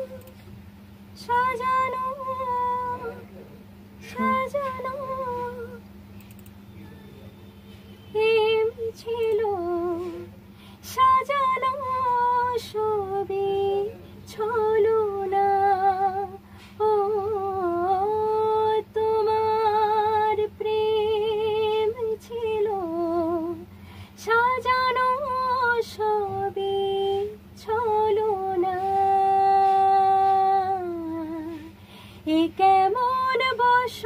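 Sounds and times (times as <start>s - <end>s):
woman singing wordless notes: 0.0s - 0.3s, 4.0s - 5.8s, 8.1s - 10.3s, 10.9s - 34.0s
woman singing long note: 4.0s - 5.8s.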